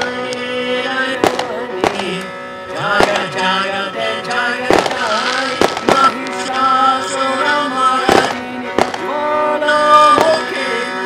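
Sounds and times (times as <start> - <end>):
sharp cracks: 0.0 - 0.5, 1.2 - 3.4, 4.2 - 6.8, 8.0 - 9.2, 10.1 - 10.6
bowed violin melody: 0.0 - 11.0.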